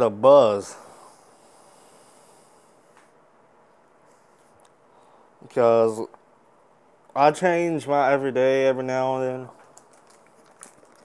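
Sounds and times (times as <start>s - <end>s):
soft hissy exhale: 0.7s - 3.1s.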